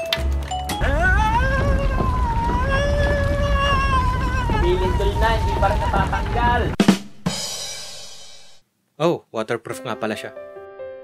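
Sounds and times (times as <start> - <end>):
drum and cymbal hit: 6.8 - 8.6.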